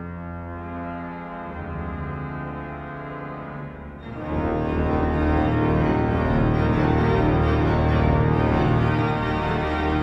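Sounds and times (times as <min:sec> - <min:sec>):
pipe organ sustained chords: 0:00.0 - 0:10.0.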